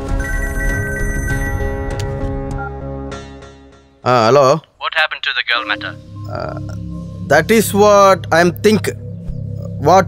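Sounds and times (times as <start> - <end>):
mobile phone ringtone: 0.0 - 2.8.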